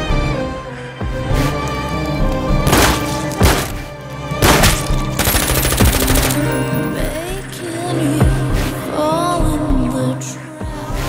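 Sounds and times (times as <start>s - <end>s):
dramatic music: 0.0s - 11.0s
automatic gunfire: 4.4s - 6.6s.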